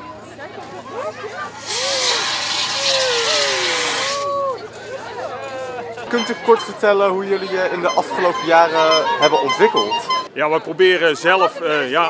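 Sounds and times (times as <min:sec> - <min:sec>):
voices: 0:00.0 - 0:12.0
fire extinguisher hissing: 0:01.5 - 0:04.2.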